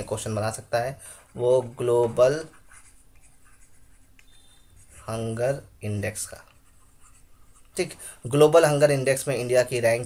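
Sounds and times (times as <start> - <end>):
stylus writing on tablet: 1.2 - 7.9.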